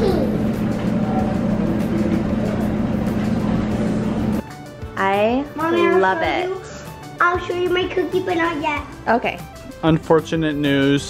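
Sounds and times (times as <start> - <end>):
low mechanical hum: 0.0 - 4.4.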